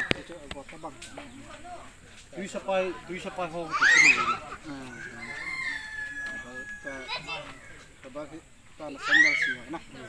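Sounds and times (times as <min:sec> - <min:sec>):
rooster crowing: 0:03.8 - 0:07.9.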